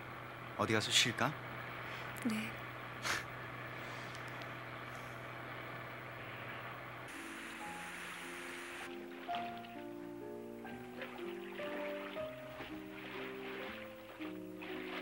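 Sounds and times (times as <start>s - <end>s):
car engine hum from cabin: 0.0s - 7.1s
slow background music: 7.1s - 15.0s.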